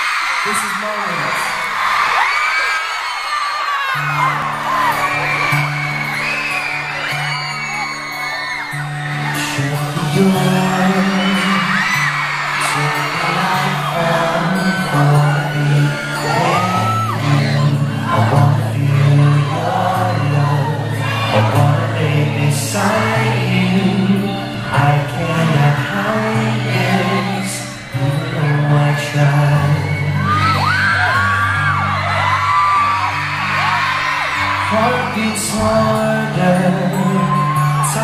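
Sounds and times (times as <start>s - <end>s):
crowd screaming: 0.0s - 38.0s
live pop band music: 0.0s - 38.0s.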